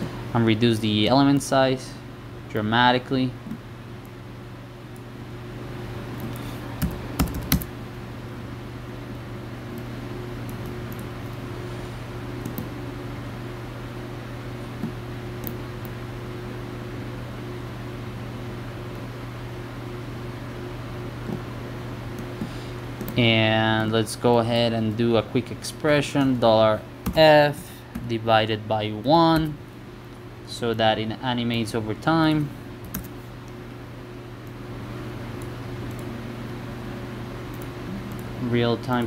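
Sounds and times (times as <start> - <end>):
steady low hum: 0.0 - 39.0
keyboard and mouse clicks: 6.2 - 7.7, 12.4 - 12.7.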